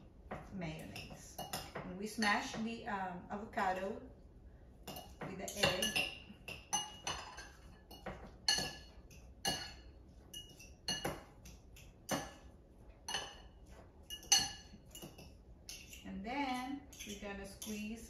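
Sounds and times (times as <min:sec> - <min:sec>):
fork clinking against glass bowl: 0:04.9 - 0:12.5, 0:13.1 - 0:16.0.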